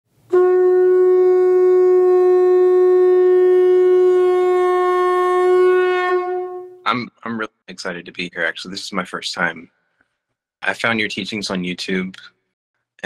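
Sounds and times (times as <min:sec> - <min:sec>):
long blown note: 0:00.3 - 0:06.9.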